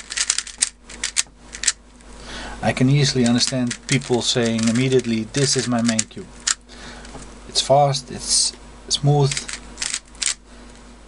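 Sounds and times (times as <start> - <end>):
puzzle cube clicking: 0.0 - 1.8, 3.2 - 6.6, 9.3 - 10.4.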